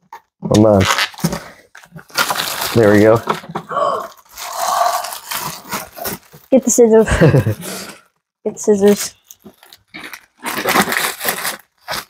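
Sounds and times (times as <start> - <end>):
plastic film crinkling: 0.7 - 6.6, 8.8 - 12.0.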